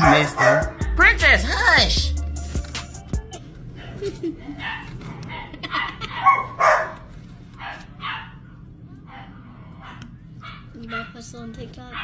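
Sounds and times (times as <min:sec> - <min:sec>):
dog barking: 0:00.0 - 0:01.1, 0:04.6 - 0:11.3.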